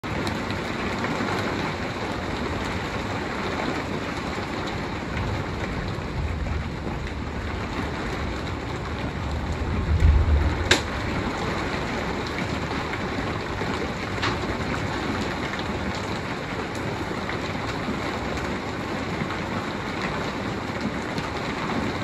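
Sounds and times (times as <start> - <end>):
rain and wind rushing: 0.0 - 22.0
low thunder rumbling: 4.9 - 14.9.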